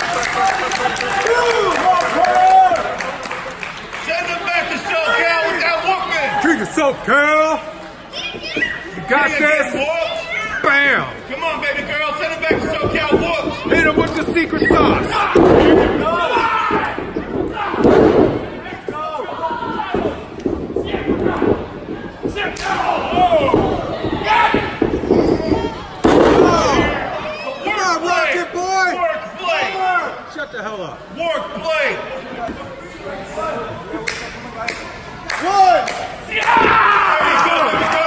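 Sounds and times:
spectators talking: 3.1s - 38.0s
bodies crashing onto wrestling ring: 12.5s - 18.6s, 19.6s - 27.1s.

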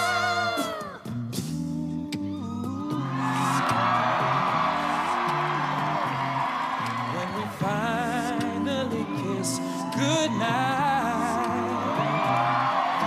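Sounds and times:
a cappella group singing: 0.0s - 1.1s, 7.1s - 13.0s
audience cheering and whooping: 2.3s - 13.0s.

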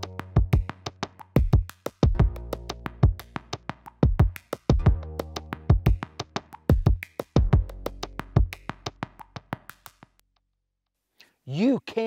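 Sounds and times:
man speaking: 11.4s - 12.0s.

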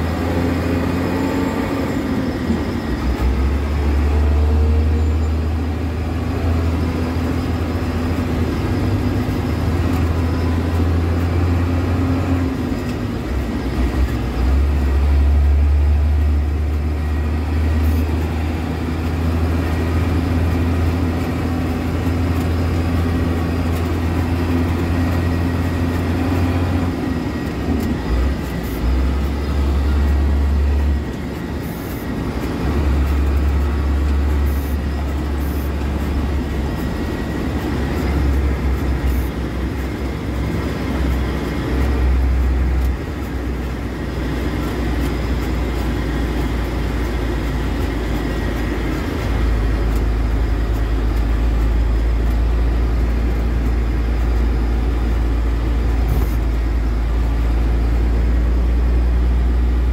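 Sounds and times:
vehicle engine and road noise: 0.0s - 59.9s.

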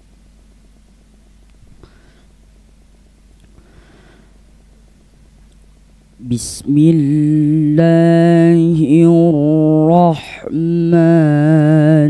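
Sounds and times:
low hum: 0.0s - 12.0s
short intake of breath: 3.6s - 4.4s.

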